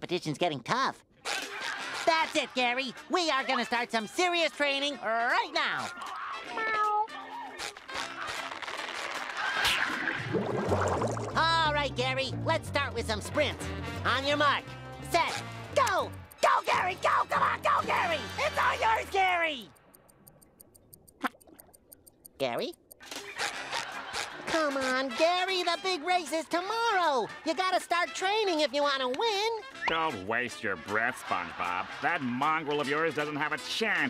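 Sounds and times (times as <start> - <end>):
light background music: 1.6 - 8.5, 11.1 - 19.6, 22.4 - 34.0
cartoon cat-like meow: 6.1 - 7.2
rapid high-pitched ticking: 15.1 - 23.6.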